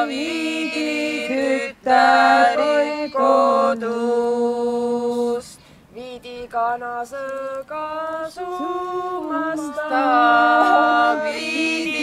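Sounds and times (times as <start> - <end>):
unaccompanied voices singing: 0.0 - 12.0.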